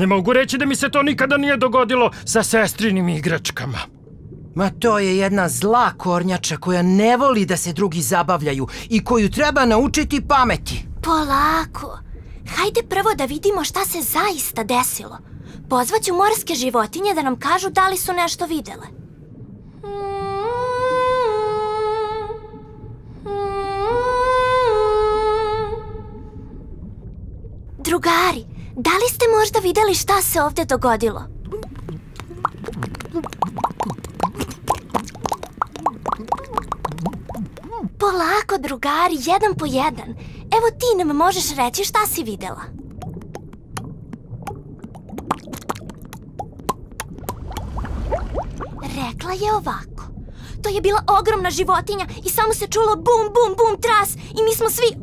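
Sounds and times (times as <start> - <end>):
soft fizzing hiss: 2.0 - 6.5, 7.5 - 52.8
cartoon bubble pops and blips: 31.4 - 37.9, 42.8 - 48.9.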